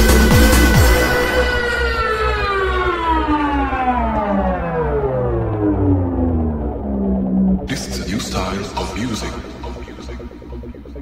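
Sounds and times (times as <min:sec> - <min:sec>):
buzzy siren-like synth tone: 0:00.0 - 0:11.0
held low bass: 0:00.0 - 0:11.0.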